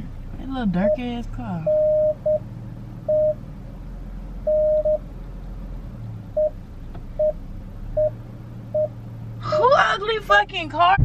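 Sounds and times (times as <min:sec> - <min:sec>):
car cabin rumble: 0:00.0 - 0:11.0
short electronic beeps: 0:01.7 - 0:02.4, 0:03.1 - 0:03.4, 0:04.5 - 0:05.1, 0:06.4 - 0:06.6, 0:08.0 - 0:08.2.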